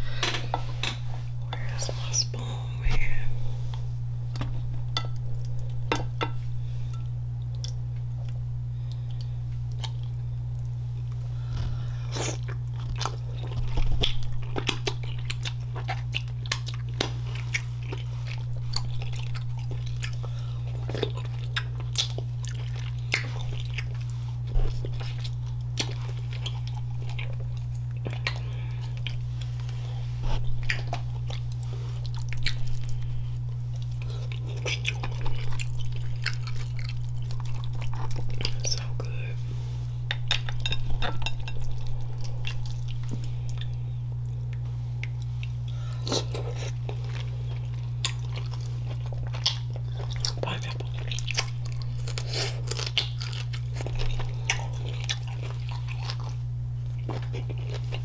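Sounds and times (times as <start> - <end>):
steady low hum: 0.0 - 58.0
wet chewing and lip smacks: 7.4 - 11.2.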